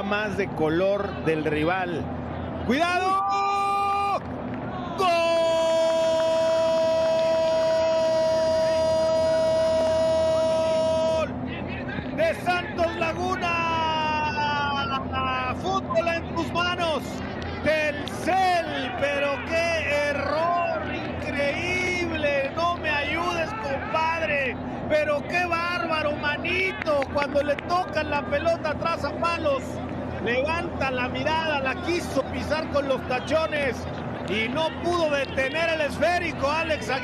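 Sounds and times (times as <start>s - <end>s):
excited shouting: 2.8s - 11.4s, 12.2s - 16.8s, 17.6s - 28.7s.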